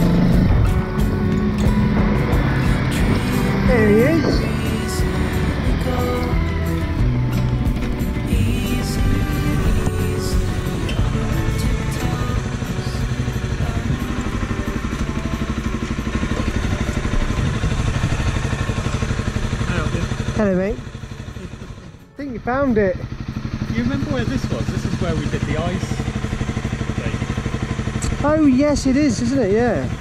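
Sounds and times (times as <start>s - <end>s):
motorcycle engine idling: 0.0s - 30.0s
motorcycle engine running: 0.0s - 30.0s.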